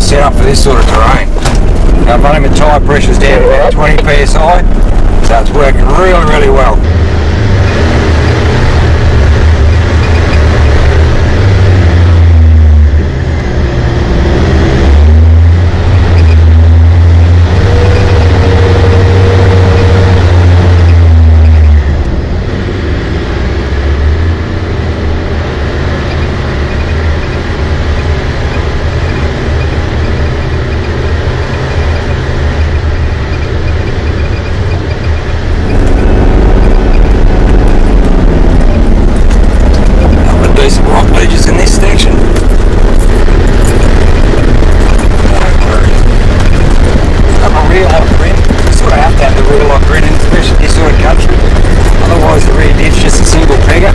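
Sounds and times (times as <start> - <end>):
off-road vehicle engine climbing: 0.0 - 53.9.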